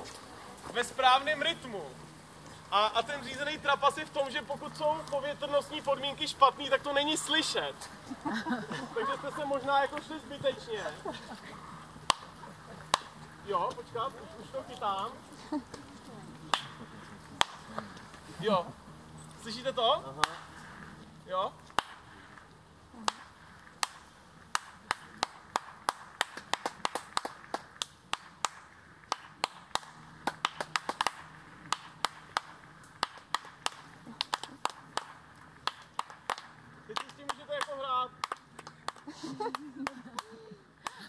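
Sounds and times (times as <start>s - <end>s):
voices: 0.0s - 25.6s, 31.4s - 41.0s
clap echo: 12.0s - 13.2s, 16.5s - 17.8s, 23.8s - 41.0s
people clapping hands: 12.0s - 13.2s, 16.4s - 17.9s, 20.2s - 20.4s, 23.8s - 41.0s.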